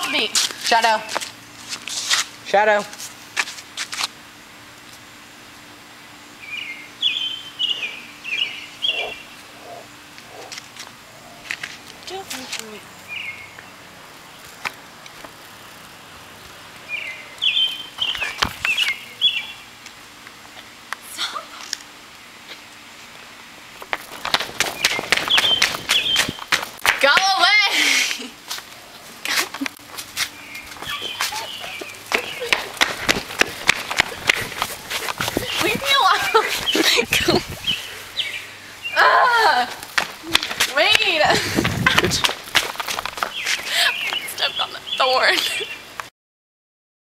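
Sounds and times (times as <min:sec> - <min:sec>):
running footsteps on pavement: 0:00.0 - 0:04.2, 0:23.8 - 0:38.4, 0:39.6 - 0:44.7
faint steady hum: 0:00.0 - 0:46.1.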